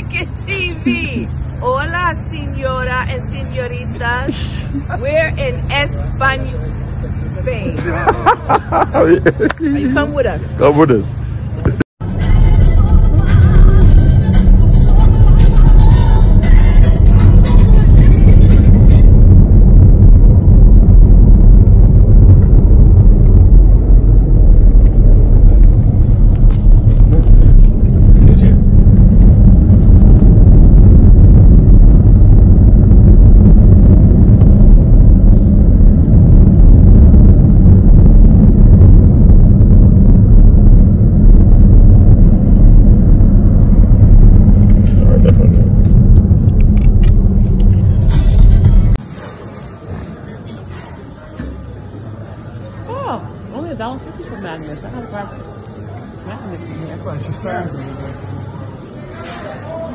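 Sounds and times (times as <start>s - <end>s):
car engine rumble: 0.0s - 49.1s
tyre road noise: 0.0s - 50.4s.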